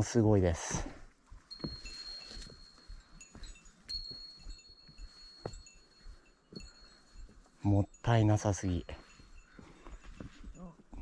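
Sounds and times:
small bell ringing: 1.4 - 11.0.

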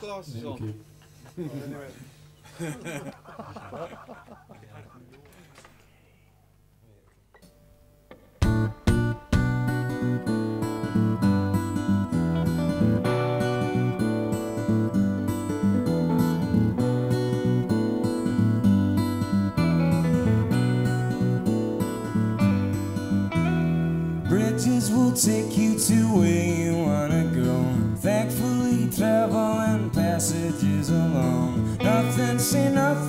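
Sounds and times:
acoustic guitars strumming: 8.1 - 33.0.

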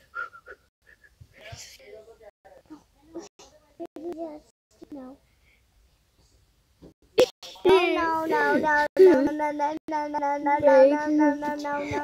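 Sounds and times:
child's drawn out sung voice: 7.7 - 12.0.

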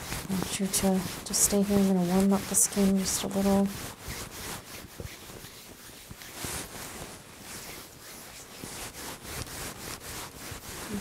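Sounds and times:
hands rubbing skin: 0.0 - 11.0.

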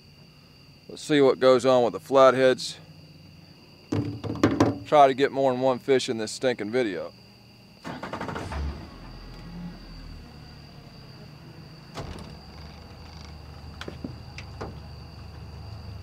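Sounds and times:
knock: 3.9 - 4.9.

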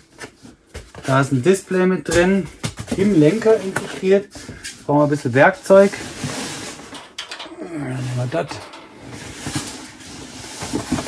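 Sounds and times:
cardboard rustling: 8.1 - 11.0.

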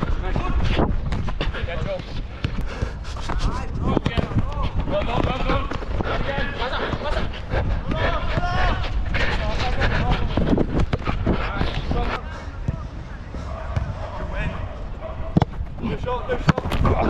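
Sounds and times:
wind rumble: 0.0 - 12.2
players shouting: 4.2 - 10.3
ball being kicked: 15.3 - 15.6.

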